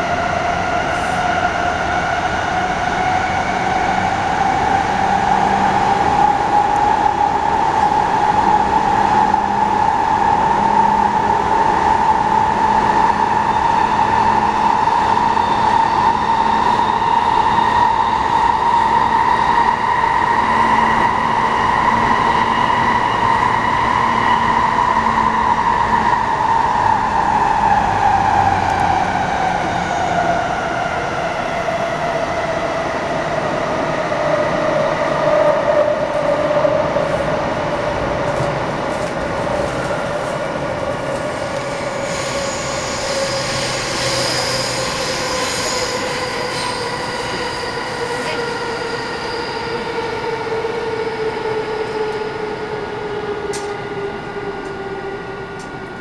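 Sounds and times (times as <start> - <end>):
wheels rumbling on rail: 0.0 - 56.0.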